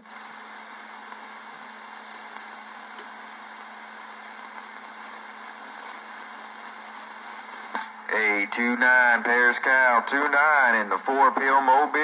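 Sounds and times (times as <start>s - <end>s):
low steady hum: 0.0s - 12.0s
radio static hiss: 0.0s - 12.0s.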